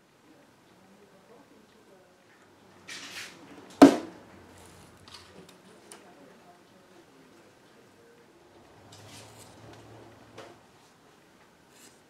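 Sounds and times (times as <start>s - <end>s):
chisel chop into board: 3.8s - 4.1s
chisel scrape: 8.9s - 9.9s.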